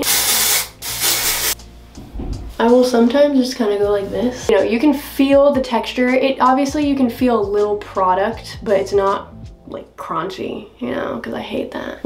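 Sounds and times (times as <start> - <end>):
aerosol spray hissing: 0.0 - 1.6.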